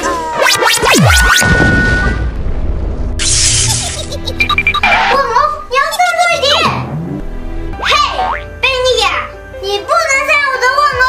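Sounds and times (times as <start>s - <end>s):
children's background music: 4.2s - 11.0s
cartoon boing pitch glide: 7.9s - 8.6s
child shouting: 9.8s - 11.0s.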